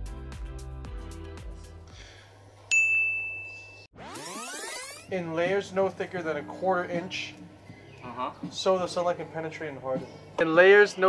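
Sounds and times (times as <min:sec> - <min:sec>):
bell-like ding: 0:02.7 - 0:03.9.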